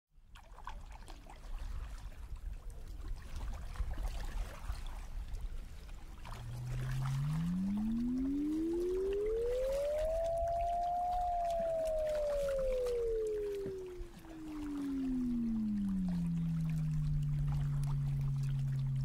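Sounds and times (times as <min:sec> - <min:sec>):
synthesized gliding tone: 0:06.1 - 0:19.0.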